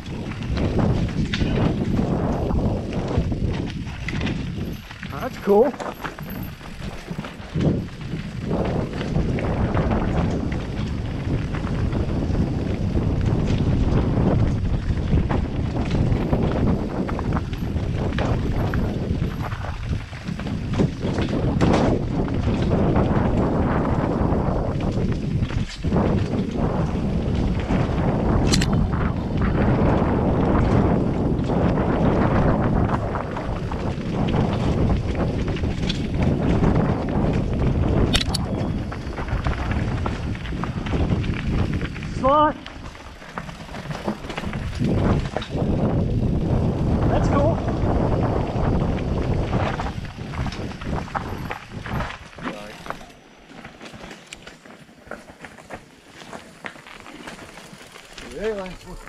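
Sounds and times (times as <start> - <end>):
bike knocks and rattles: 0.0 - 59.0
wind rush on microphone: 0.0 - 59.0
tyres rolling across rock: 0.1 - 11.8, 33.0 - 47.0, 47.8 - 59.0.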